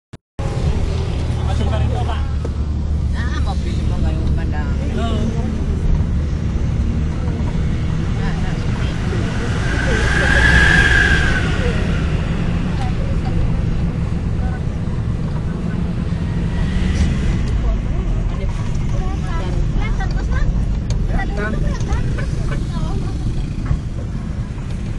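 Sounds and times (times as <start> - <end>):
car road and engine rumble: 0.4 - 24.9
oncoming vehicle passing: 3.9 - 24.9.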